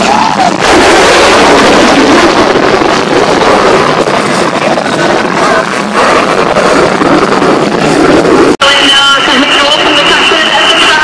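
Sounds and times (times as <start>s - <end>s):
jet engine roaring: 0.0s - 11.0s.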